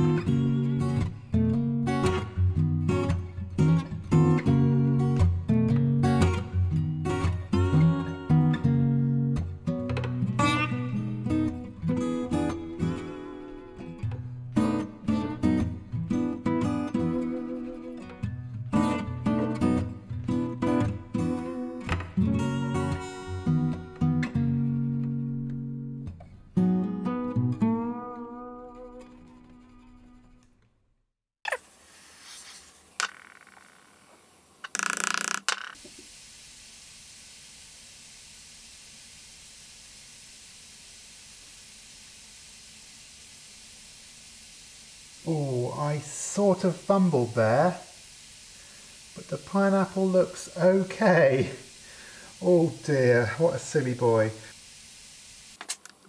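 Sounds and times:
steady hiss: 0:00.0 - 0:05.3, 0:06.0 - 0:14.0, 0:31.5 - 0:56.0
acoustic guitar plucking: 0:00.0 - 0:30.4.

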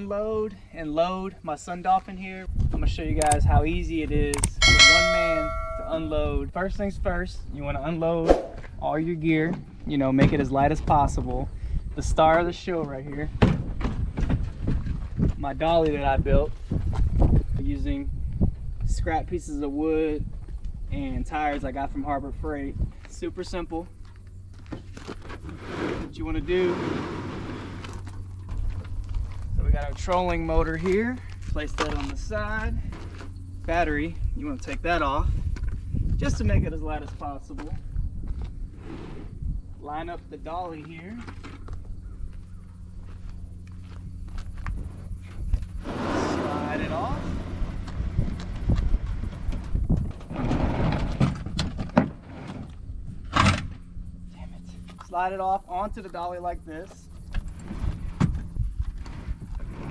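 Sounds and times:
plastic boat hull scraping: 0:24.8 - 0:28.2, 0:38.8 - 0:39.4, 0:45.8 - 0:52.8, 0:57.6 - 0:59.9
footsteps on gravel: 0:27.4 - 0:33.4, 0:40.7 - 0:49.8.

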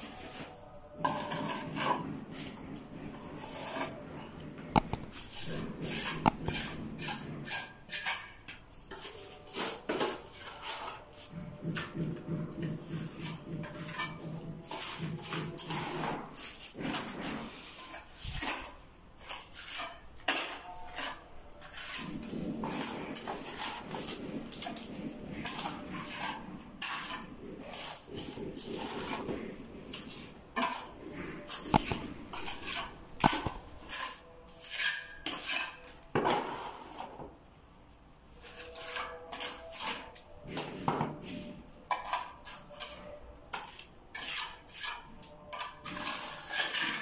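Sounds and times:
trowel scraping mortar: 0:00.2 - 0:04.1, 0:04.8 - 0:37.1, 0:38.4 - 0:47.0.

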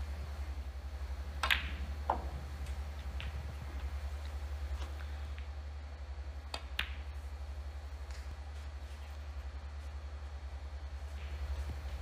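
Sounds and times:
snooker balls knocking together: 0:01.3 - 0:05.5, 0:06.5 - 0:07.2
cue tip striking ball: 0:01.4 - 0:05.5.

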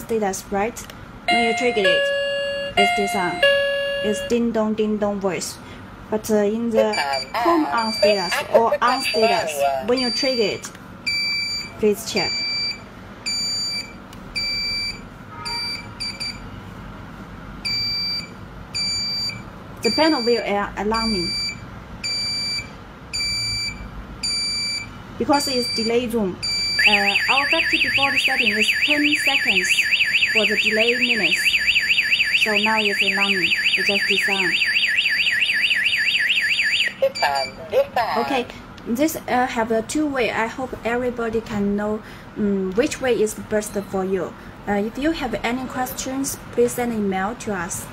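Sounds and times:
alarm panel high beeps: 0:01.3 - 0:04.4, 0:06.8 - 0:16.4, 0:17.7 - 0:37.6.

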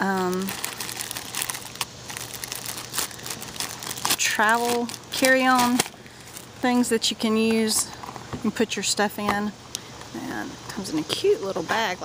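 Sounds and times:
plastic pouch crinkling: 0:00.0 - 0:06.6.

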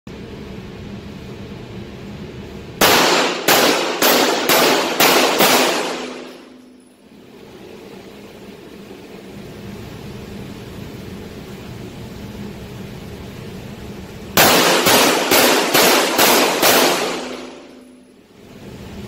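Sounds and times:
steady background hum: 0:00.1 - 0:19.0
pistol shots echoing indoors: 0:02.8 - 0:08.8, 0:14.4 - 0:18.2.

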